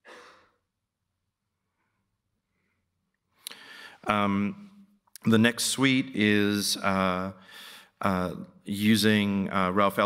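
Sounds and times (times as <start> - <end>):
breath into microphone: 3.4 - 4.1, 7.4 - 8.0.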